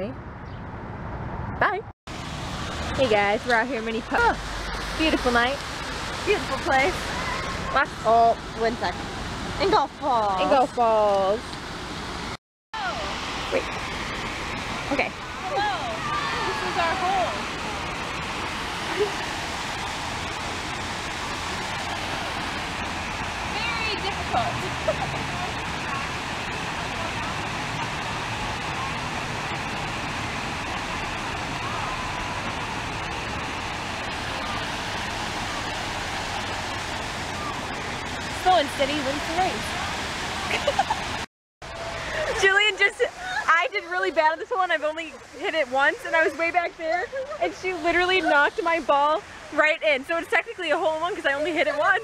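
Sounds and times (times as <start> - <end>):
waterfall rushing: 2.1 - 52.0.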